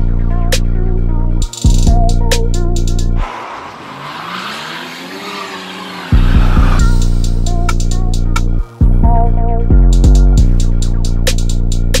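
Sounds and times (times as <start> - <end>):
hip-hop beat with heavy bass: 0.0 - 4.0, 5.0 - 12.0
car engine revving: 2.4 - 8.5.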